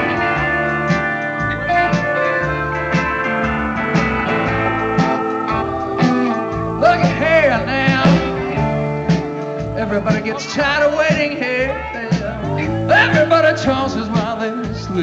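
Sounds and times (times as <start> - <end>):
lead guitar line bending in pitch: 0.0 - 10.9
bass guitar: 0.0 - 15.0
drums: 0.0 - 15.0
electric guitars: 0.0 - 15.0
organ: 0.0 - 15.0.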